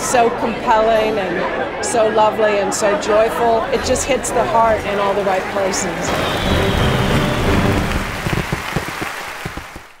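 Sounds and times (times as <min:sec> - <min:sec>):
audience applause: 0:04.8 - 0:10.0.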